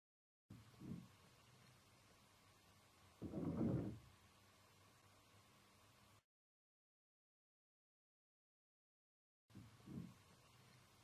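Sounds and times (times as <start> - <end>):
faint steady hiss: 0.5 - 6.2, 9.5 - 11.0.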